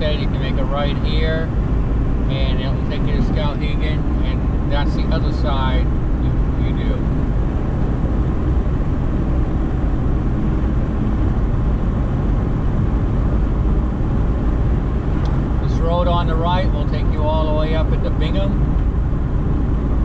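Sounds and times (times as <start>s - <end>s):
car driving tyre and engine hum: 0.0s - 20.0s.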